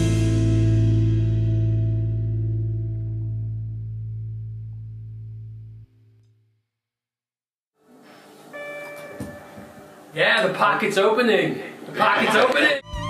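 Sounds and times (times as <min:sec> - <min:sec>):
electric guitar and bass chord ringing: 0:00.0 - 0:06.2, 0:08.5 - 0:10.1.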